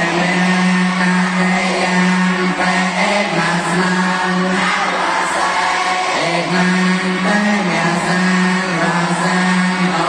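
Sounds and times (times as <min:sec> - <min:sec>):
monks chanting in unison: 0:00.0 - 0:10.0.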